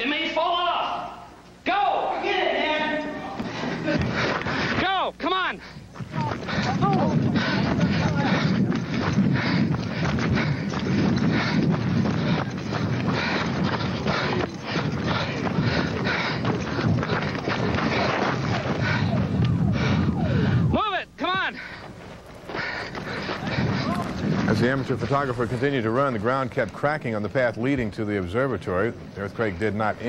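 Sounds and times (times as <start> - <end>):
jostling and footfall: 5.8 - 20.6, 21.6 - 30.0.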